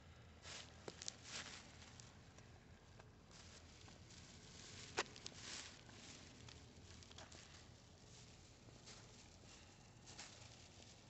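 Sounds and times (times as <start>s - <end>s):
soft cloth rustle: 0.4s - 2.2s, 3.2s - 11.0s.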